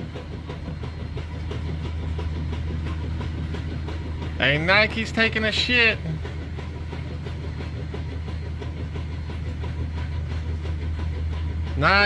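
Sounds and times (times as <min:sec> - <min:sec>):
faint fast clatter: 0:00.0 - 0:12.0
low mechanical hum: 0:00.0 - 0:12.0.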